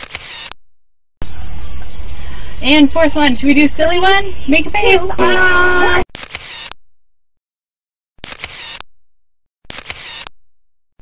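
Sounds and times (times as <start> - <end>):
camera shutter burst: 9.7 - 10.3.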